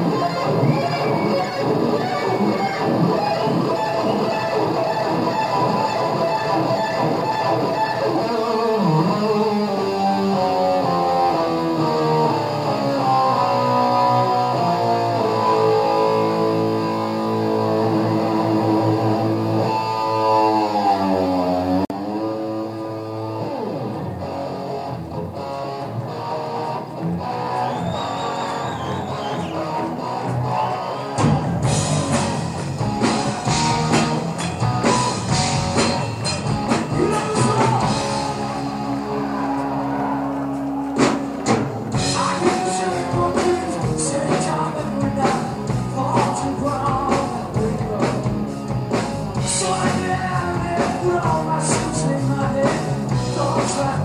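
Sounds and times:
electric guitar bent notes: 0.0 - 44.0.

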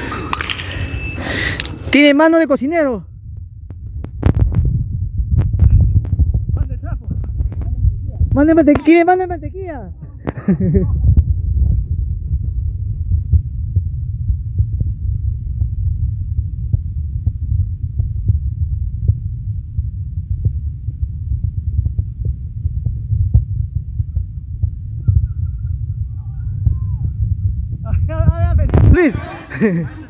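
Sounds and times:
low microphone rumble: 2.7 - 30.0.

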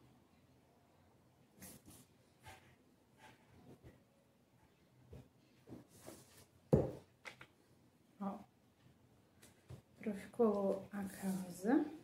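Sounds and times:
bottle knocking on table: 6.7 - 7.0.

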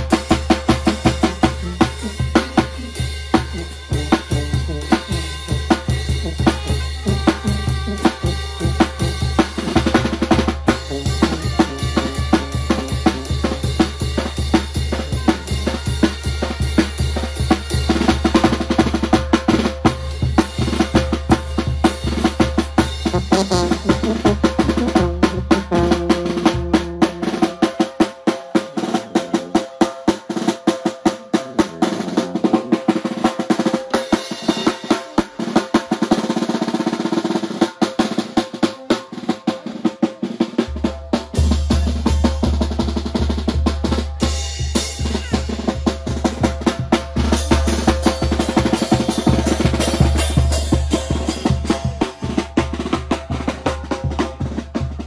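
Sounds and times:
bass drum: 0.0 - 27.6, 40.6 - 55.0
snare drum rolls: 0.0 - 55.0
sousaphone bass: 23.0 - 27.4.

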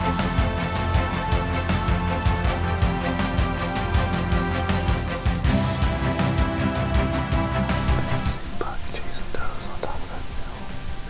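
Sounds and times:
quiet background music: 0.0 - 11.0
man whispering: 8.1 - 11.0.

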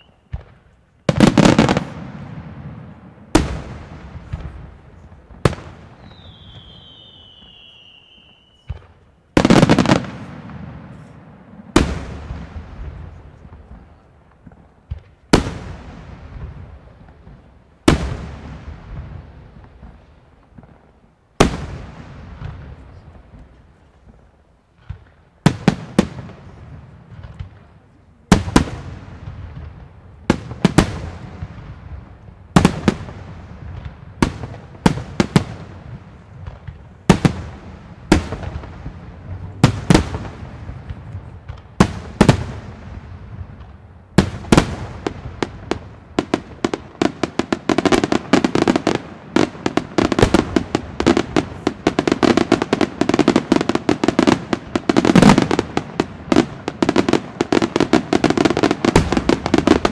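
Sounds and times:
firework crackling: 0.0 - 59.9.

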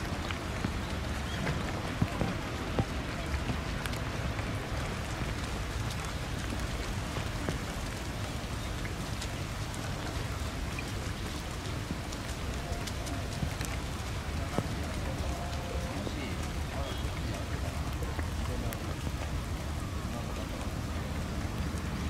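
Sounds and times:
steady rain falling: 0.0 - 22.0.

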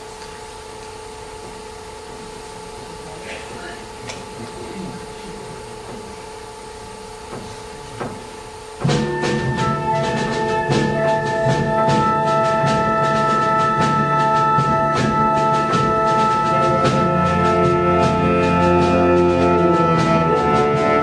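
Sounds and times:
percussion strokes: 8.0 - 21.0
concert wind band playing: 8.8 - 21.0
brass chords: 8.9 - 21.0.

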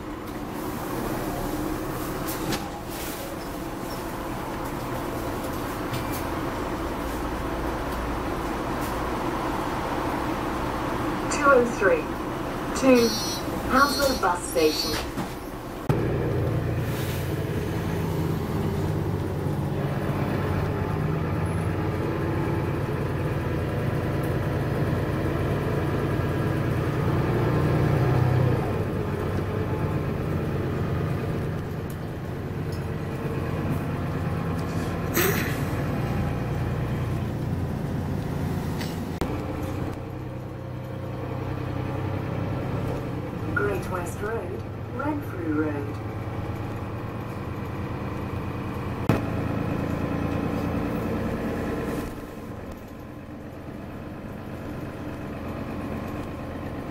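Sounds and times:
bus engine drone: 0.0 - 56.9
rumble of moving bus: 0.0 - 56.9.

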